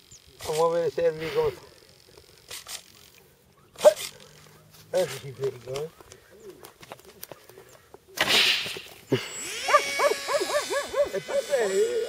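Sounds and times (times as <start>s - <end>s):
rising and falling high cries: 9.1s - 12.0s.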